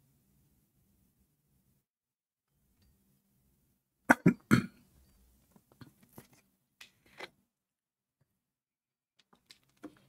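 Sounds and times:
man coughing: 4.1s - 4.8s.

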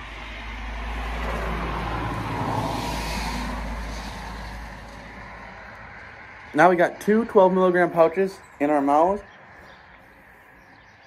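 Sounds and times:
road vehicle passing by: 0.0s - 11.0s.

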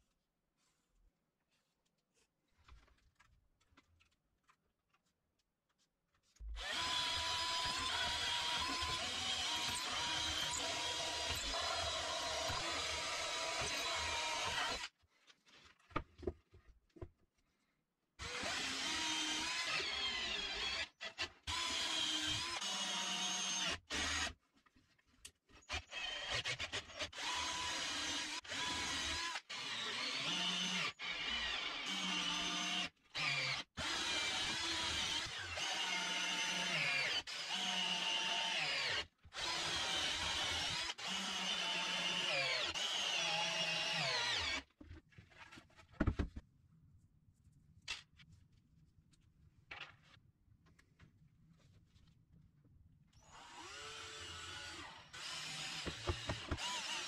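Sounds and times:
cordless drill driving screws: 6.6s - 14.9s, 18.2s - 24.3s, 25.7s - 44.6s, 53.2s - 57.0s.

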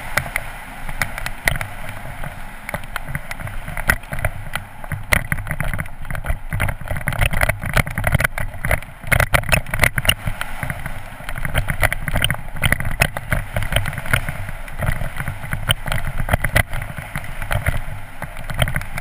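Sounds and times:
bike rattling: 0.0s - 19.0s
bike tyres crunching on gravel: 0.0s - 19.0s
wind rumbling on microphone: 0.0s - 19.0s.

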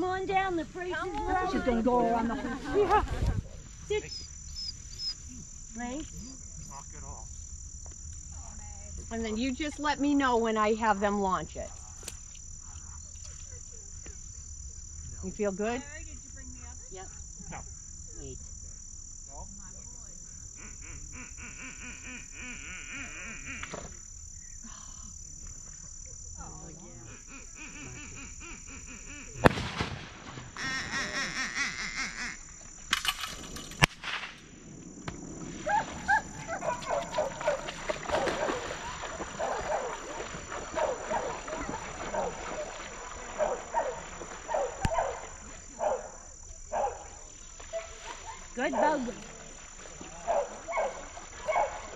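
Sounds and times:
insects buzzing: 0.0s - 51.9s
short animal calls: 20.6s - 24.0s, 27.0s - 29.5s, 30.6s - 32.6s
loud sharp bang: 29.4s - 30.6s, 33.8s - 35.2s.

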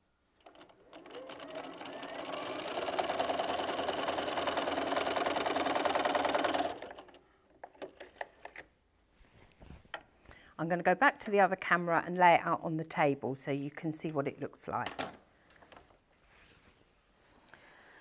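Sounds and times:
electric sewing machine stitching: 0.4s - 7.2s.

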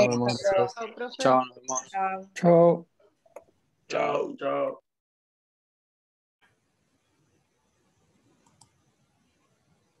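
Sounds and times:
faint clicks: 8.3s - 8.8s.

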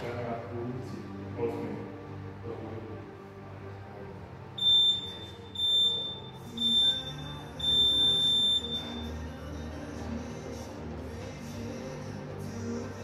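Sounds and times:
interval timer beeps: 4.6s - 9.2s.

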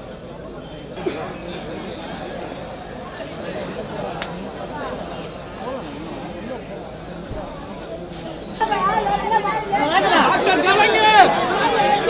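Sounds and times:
crowd of men talking and calling out: 0.0s - 12.0s.

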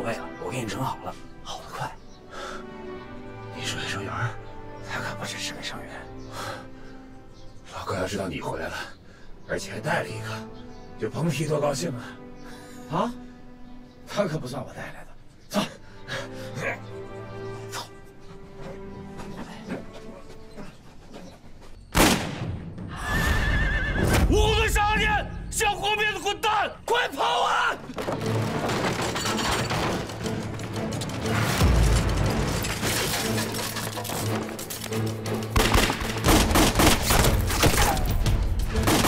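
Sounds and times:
music: 0.0s - 39.0s
shouted calls: 23.1s - 27.9s.

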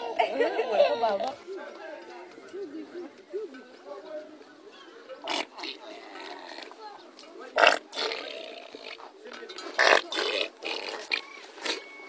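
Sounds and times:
cattle lowing harshly: 9.8s - 12.0s.

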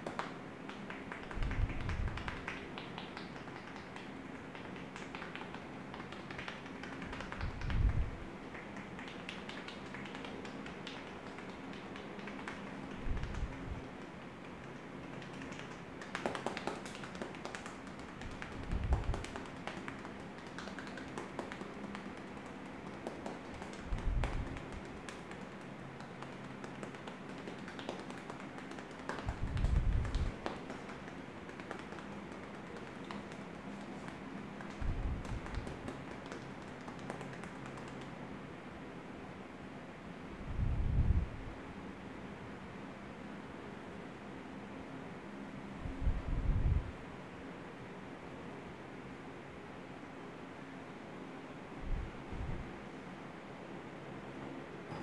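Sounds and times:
fingertips tapping on scalp: 0.0s - 38.3s.

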